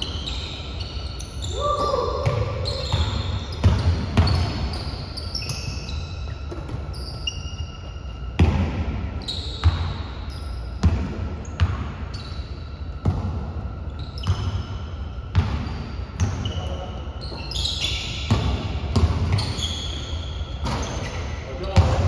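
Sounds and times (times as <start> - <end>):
sneaker squeaks: 0.0 - 22.0.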